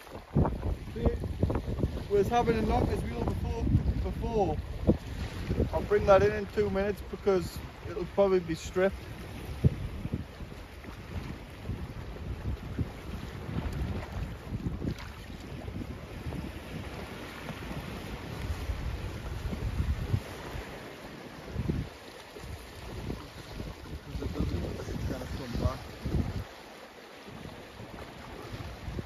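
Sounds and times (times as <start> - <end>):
wind buffeting microphone: 0.0 - 26.6, 27.2 - 29.0
small waves washing on rocks: 0.0 - 29.0.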